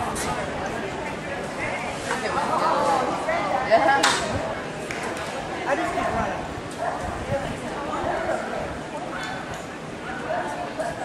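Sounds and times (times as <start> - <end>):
dog barking: 6.8 - 7.1, 10.0 - 11.0.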